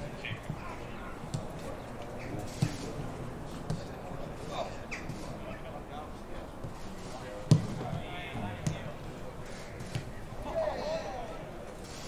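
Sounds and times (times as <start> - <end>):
distant voices: 0.0 - 12.0
football kick thud: 7.5 - 8.0.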